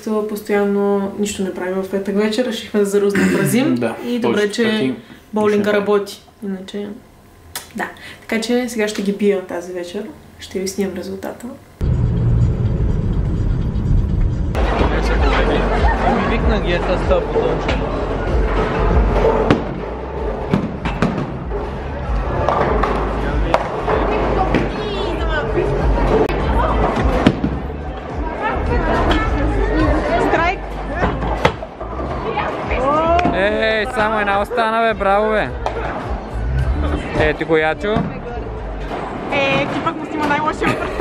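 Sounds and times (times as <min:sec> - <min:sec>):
background music: 0:12.2 - 0:41.0
bowling balls and pins clattering: 0:17.4 - 0:24.8.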